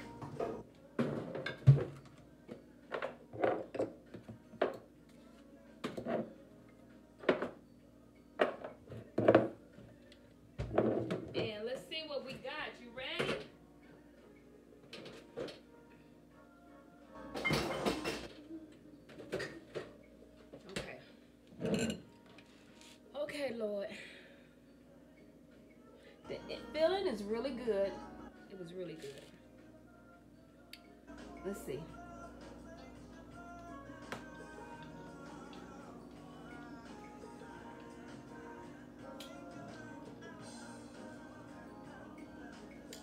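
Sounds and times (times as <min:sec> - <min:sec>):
dishes knocking and clunking: 0:02.9 - 0:04.8, 0:08.4 - 0:09.6, 0:10.6 - 0:11.6, 0:17.4 - 0:18.3.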